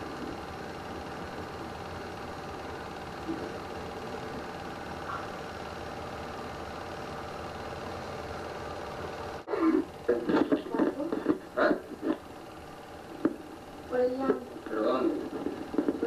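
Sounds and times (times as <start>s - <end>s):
steady hum with hiss: 0.0s - 16.0s.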